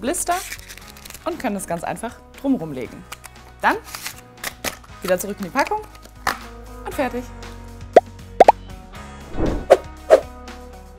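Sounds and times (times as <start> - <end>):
background music: 0.0 - 10.9.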